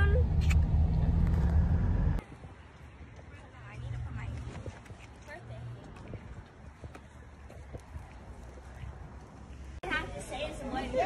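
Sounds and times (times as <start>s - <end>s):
footsteps on asphalt: 2.2s - 9.8s.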